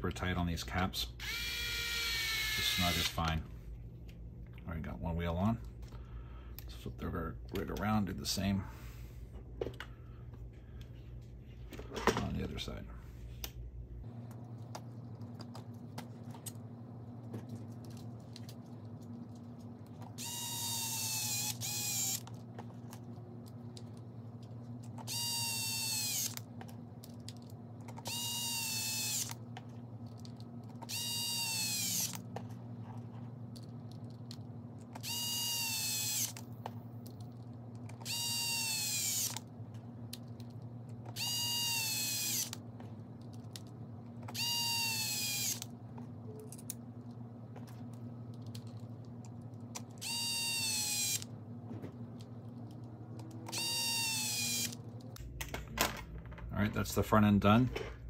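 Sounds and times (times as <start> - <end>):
cordless power driver whining: 1.2 - 3.3, 20.2 - 22.3, 25.0 - 26.5, 28.0 - 29.4, 30.8 - 32.3, 35.0 - 36.5, 38.0 - 39.4, 41.1 - 42.6, 44.3 - 45.7, 50.0 - 51.3, 53.4 - 54.9.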